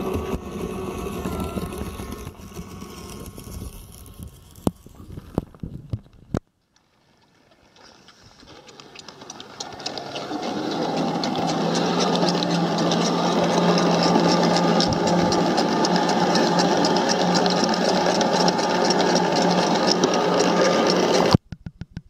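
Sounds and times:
motor and pump hum: 0:00.0 - 0:06.0, 0:07.8 - 0:21.4
water churning: 0:06.8 - 0:21.4.

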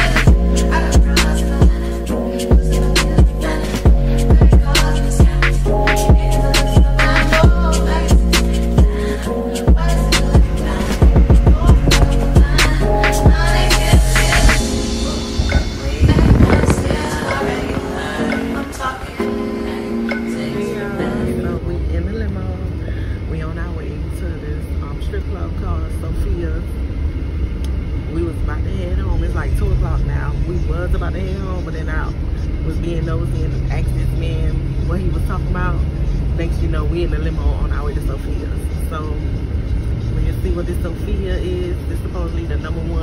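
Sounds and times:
car engine and road noise: 0:00.0 - 0:43.0.

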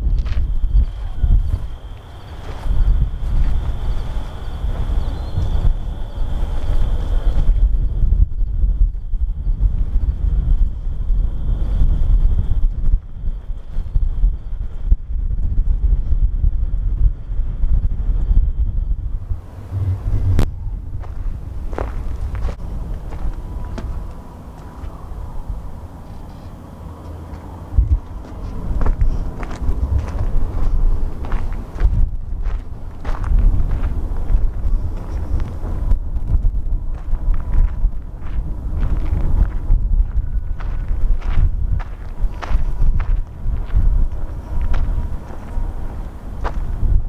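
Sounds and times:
footsteps on dry dirt: 0:00.0 - 0:07.5, 0:19.3 - 0:25.1, 0:26.1 - 0:47.0
wind buffeting microphone: 0:00.0 - 0:47.0
thin high tone: 0:19.2 - 0:22.3.

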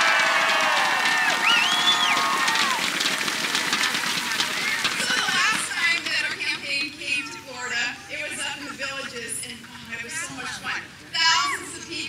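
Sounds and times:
loud high shout: 0:00.0 - 0:02.9.

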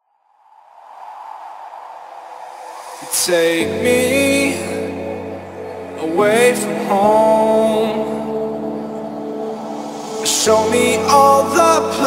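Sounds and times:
filtered white-noise wash: 0:01.0 - 0:12.0.

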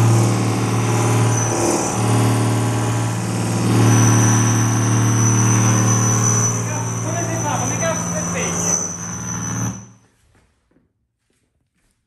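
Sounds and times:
electrical hum with high whine: 0:00.0 - 0:10.0.

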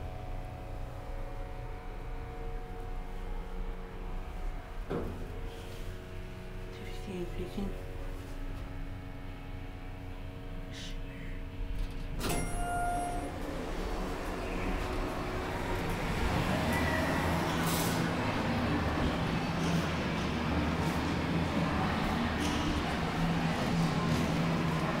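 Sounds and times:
elevator hum and rumble: 0:00.0 - 0:25.0
elevator chime: 0:12.2 - 0:13.7.

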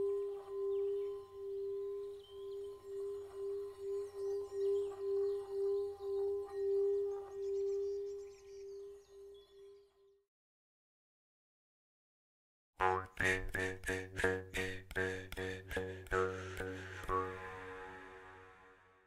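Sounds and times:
pulsing droning tone: 0:12.8 - 0:19.0.

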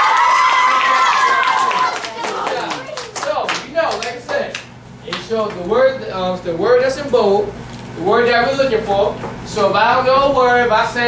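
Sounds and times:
children clapping hands: 0:00.0 - 0:05.2
children's voices: 0:00.9 - 0:03.1.

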